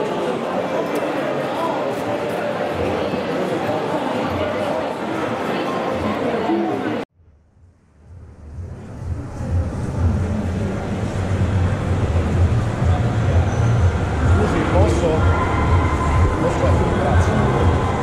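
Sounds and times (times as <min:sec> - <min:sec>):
steady low hum: 0:07.2 - 0:18.0.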